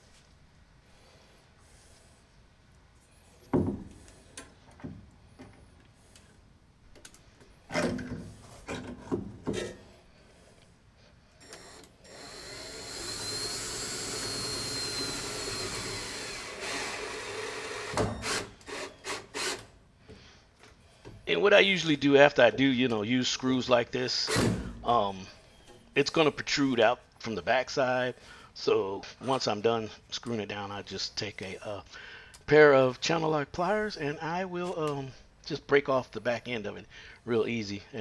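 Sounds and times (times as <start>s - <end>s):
power drill driving a screw: 11.4s - 19.7s.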